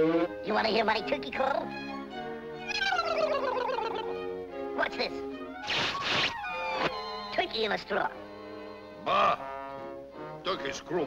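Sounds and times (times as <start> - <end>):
orchestral cartoon music: 0.0 - 11.0
quick falling glide: 5.6 - 7.0.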